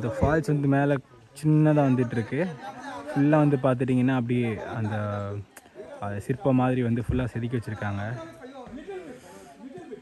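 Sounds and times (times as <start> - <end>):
man speaking: 0.0 - 9.3
outdoor background hiss: 0.0 - 10.0.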